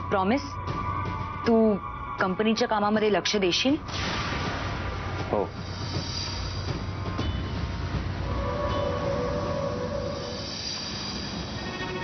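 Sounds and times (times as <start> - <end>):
low rumbling drone: 4.7 - 12.0
high held tones: 8.2 - 12.0.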